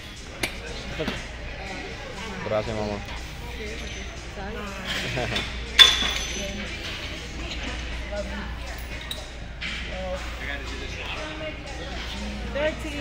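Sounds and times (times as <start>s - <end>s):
murmur of voices: 0.0s - 13.0s
gym weights clinking: 5.3s - 6.8s.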